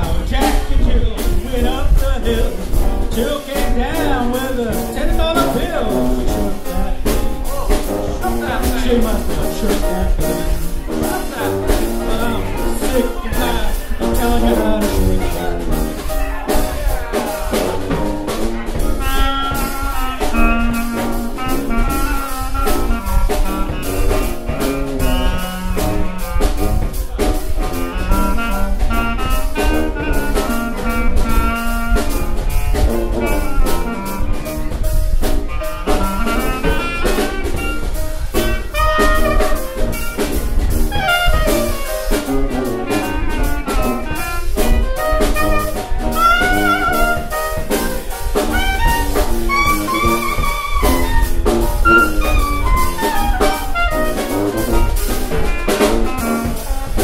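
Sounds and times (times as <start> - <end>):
drum kit: 0.0 - 57.0
piano: 0.0 - 57.0
sousaphone bass: 0.0 - 57.0
clarinet lead: 1.1 - 57.0.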